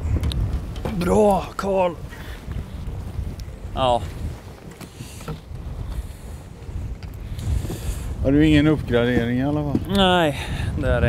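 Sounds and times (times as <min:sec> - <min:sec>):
choppy water around boat: 0:00.0 - 0:11.0
wind buffeting microphone: 0:00.0 - 0:11.0.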